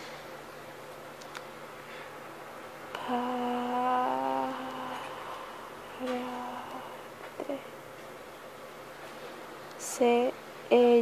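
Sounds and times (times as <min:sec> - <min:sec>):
woman humming a steady note: 0:02.9 - 0:07.8.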